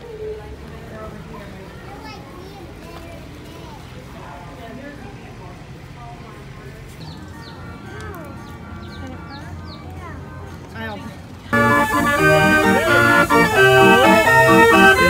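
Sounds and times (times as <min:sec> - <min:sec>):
chatter of voices: 0:00.0 - 0:15.0
music with long held notes: 0:11.6 - 0:15.0.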